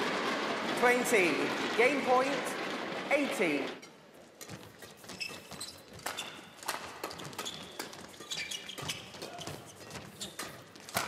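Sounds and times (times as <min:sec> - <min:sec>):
footsteps on court: 0:03.6 - 0:11.0
racket striking shuttlecock: 0:04.4 - 0:11.0.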